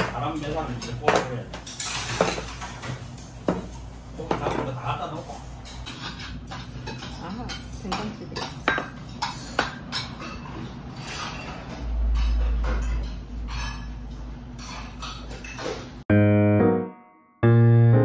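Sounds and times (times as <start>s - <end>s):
tableware clinking: 0.0s - 2.9s, 5.6s - 16.0s
metal dishes set on table: 0.8s - 2.9s.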